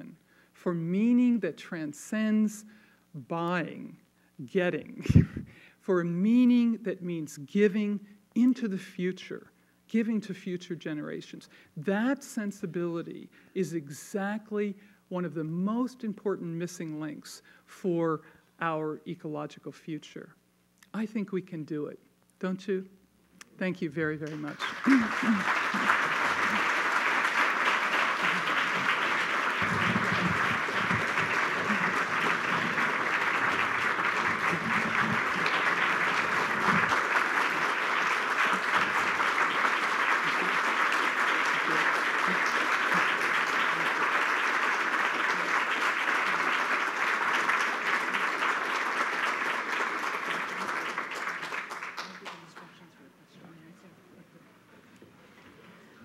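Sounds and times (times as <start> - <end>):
large audience applauding: 24.2 - 52.7.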